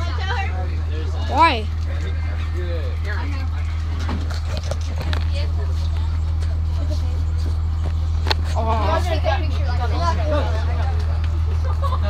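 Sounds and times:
bus engine droning: 0.0 - 12.0.

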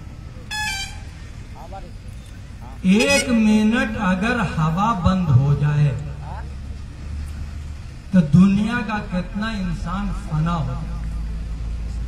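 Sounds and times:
low outdoor rumble: 0.0 - 12.0
vehicle horn toot: 0.4 - 1.3, 2.9 - 3.7.

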